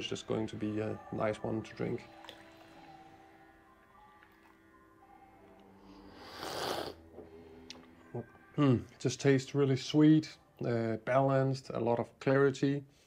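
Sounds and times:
faint background music: 0.0 - 13.0
noisy sip of coffee: 5.6 - 7.0.

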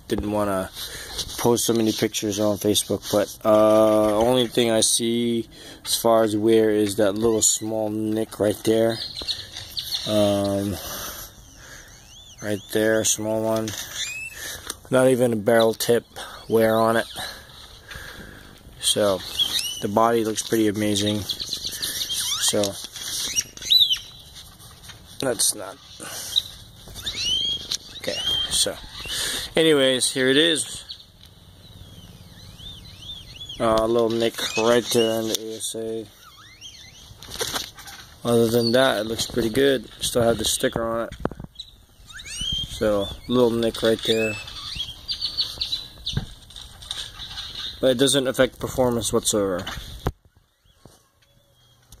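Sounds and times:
outdoor background hiss: 0.0 - 52.0
bird whistling: 8.9 - 14.7, 19.1 - 22.6, 23.2 - 24.3, 25.5 - 37.2, 41.5 - 46.3, 50.2 - 52.0.

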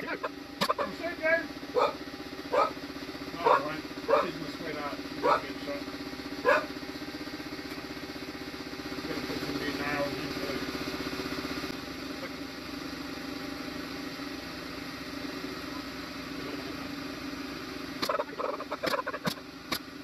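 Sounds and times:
air compressor pulsing: 0.0 - 20.0.

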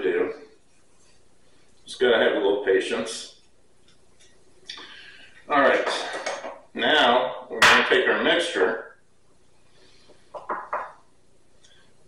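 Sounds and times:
man talking indistinctly: 6.8 - 8.8.

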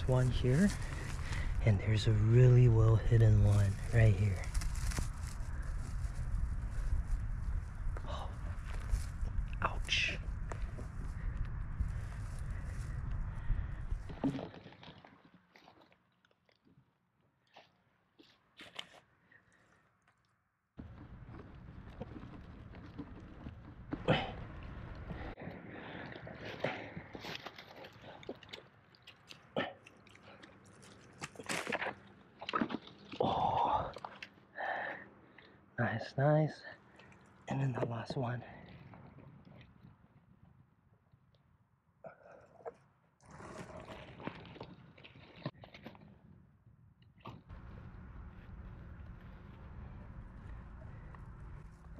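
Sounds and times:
low microphone rumble: 0.0 - 14.2, 47.5 - 51.9
pine needles and twigs crackling: 0.0 - 16.8, 27.0 - 34.4, 47.3 - 51.9.

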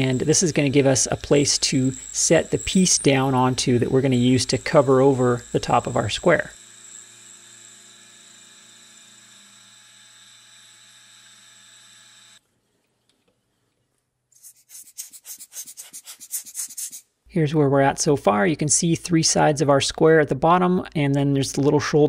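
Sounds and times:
milling spindle whine: 0.0 - 12.4.

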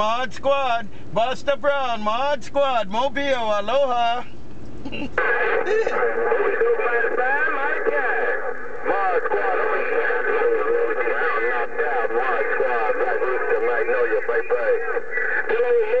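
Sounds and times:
garbled radio voices overlapping: 0.0 - 16.0.

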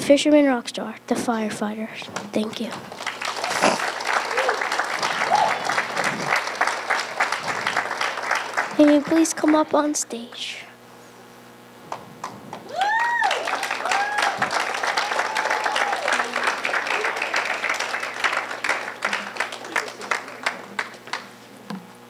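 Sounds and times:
audience clapping: 2.1 - 10.3, 11.9 - 21.5.

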